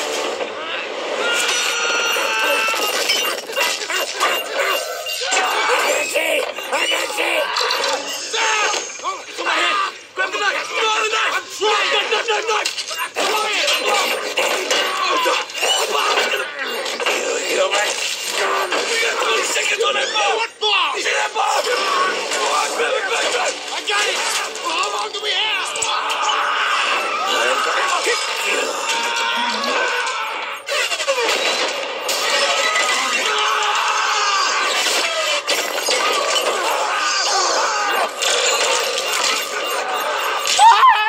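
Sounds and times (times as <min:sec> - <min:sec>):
shouted dialogue: 0:00.6 - 0:41.0
glass shattering: 0:01.4 - 0:09.0, 0:21.6 - 0:41.0.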